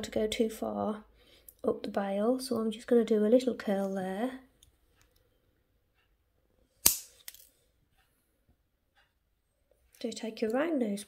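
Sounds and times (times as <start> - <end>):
wire cutters snipping wire: 6.8 - 7.5.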